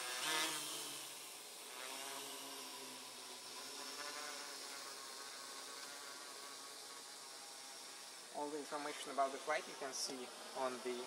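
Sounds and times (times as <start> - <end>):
distant drone propeller buzz: 0.0 - 11.0.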